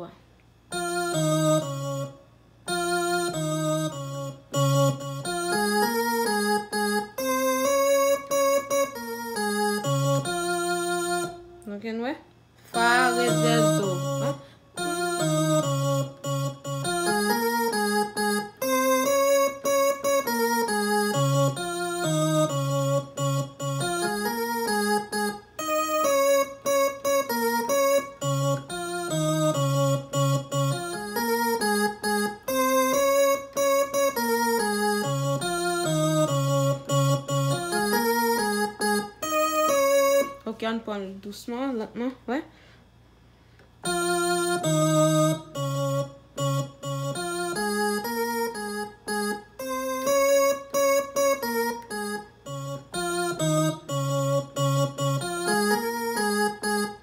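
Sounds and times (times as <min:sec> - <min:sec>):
electronic keyboard chords and melody: 0:00.0 - 0:40.5, 0:43.5 - 0:57.0.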